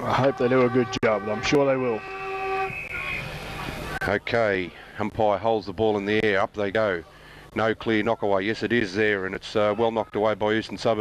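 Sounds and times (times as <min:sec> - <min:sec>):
siren horn-like chord: 0:00.0 - 0:04.0.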